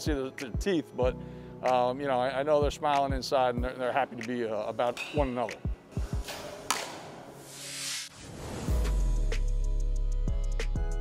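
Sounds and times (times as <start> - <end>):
faint music: 0.0 - 8.0
rising whoosh effect: 7.4 - 9.2.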